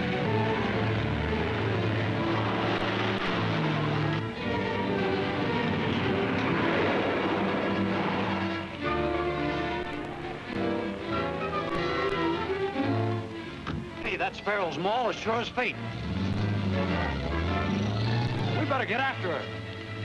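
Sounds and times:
orchestral string music: 0.0s - 20.0s.

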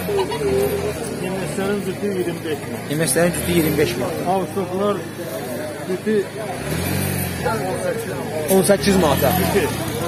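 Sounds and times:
people talking: 0.0s - 10.0s
vehicle engine humming: 0.0s - 10.0s.

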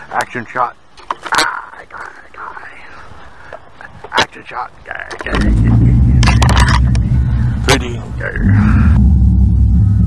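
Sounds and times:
faint whispered voice: 1.4s - 4.0s.

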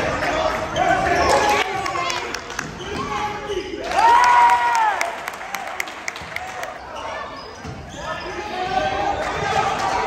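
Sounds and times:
sneaker squeaks: 0.1s - 4.0s, 6.7s - 9.6s.

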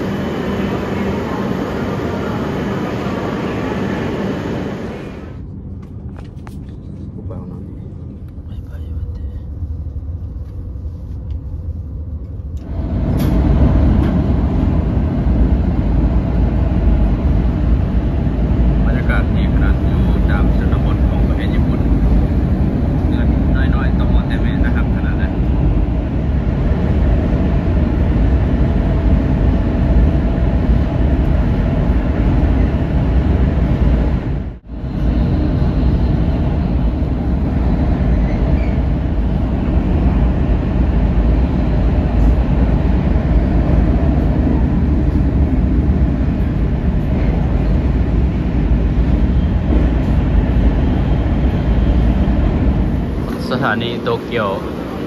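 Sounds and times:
train rumble from inside car: 0.0s - 55.0s.

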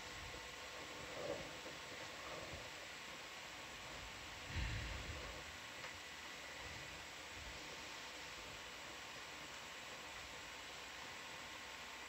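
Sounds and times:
faint hiss: 0.0s - 12.0s.

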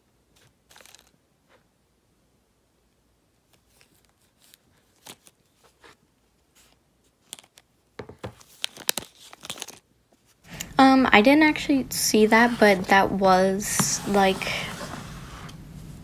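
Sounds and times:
packaging crinkling and rustling: 0.4s - 1.2s, 3.5s - 6.0s, 6.6s - 10.4s.

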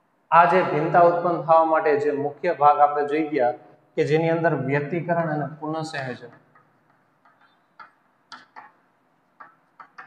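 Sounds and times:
chalk tapping and scraping on chalkboard: 6.3s - 10.0s.

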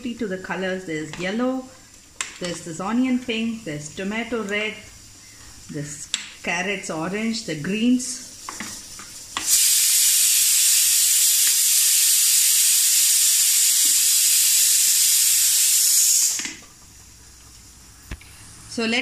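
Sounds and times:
loud steady hiss: 0.0s - 19.0s.

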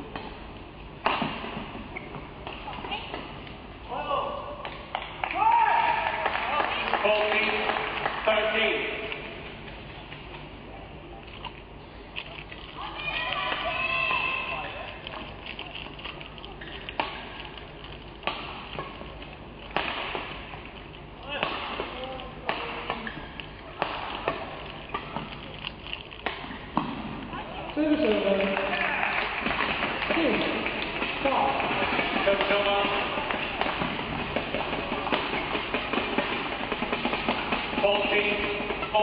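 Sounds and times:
racket striking shuttlecock: 1.0s - 3.4s, 18.2s - 25.5s, 26.2s - 27.2s, 28.0s - 39.0s.

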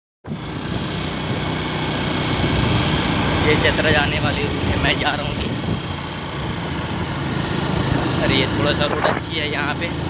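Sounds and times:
vehicle engine noise on road: 0.2s - 10.0s.

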